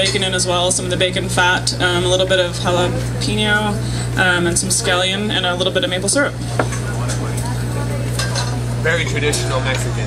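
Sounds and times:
faint background chatter: 0.0s - 10.0s
cutlery clinking on plates: 8.1s - 8.6s.

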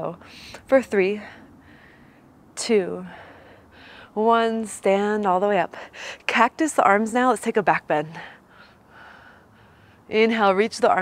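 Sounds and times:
woman speaking: 0.0s - 1.3s, 4.2s - 8.3s, 10.1s - 11.0s
woman breathing softly: 1.2s - 2.4s, 3.0s - 4.2s, 8.2s - 10.1s.

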